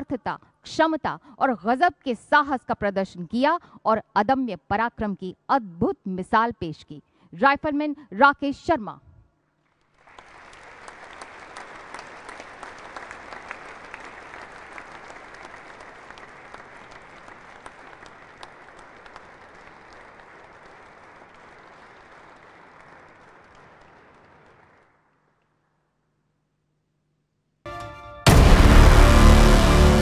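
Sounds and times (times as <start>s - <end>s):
audience applauding: 9.9s - 25.3s.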